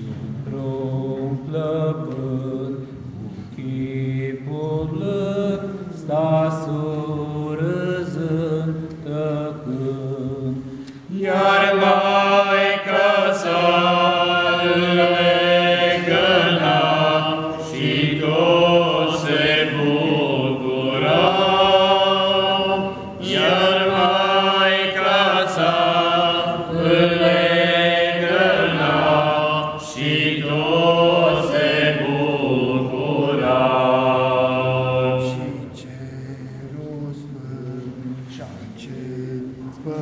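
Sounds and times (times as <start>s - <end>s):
men singing unaccompanied: 0.0s - 2.8s, 3.6s - 40.0s.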